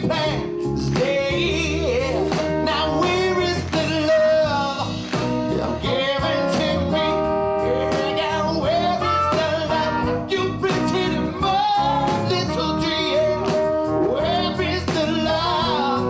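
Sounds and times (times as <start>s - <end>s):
live band playing: 0.0s - 16.0s
male singer: 0.0s - 16.0s.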